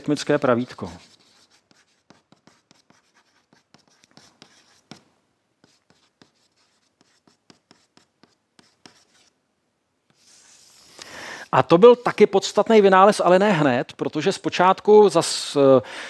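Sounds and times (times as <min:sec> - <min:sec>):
chalk on a blackboard: 0:00.0 - 0:09.4, 0:10.1 - 0:12.4.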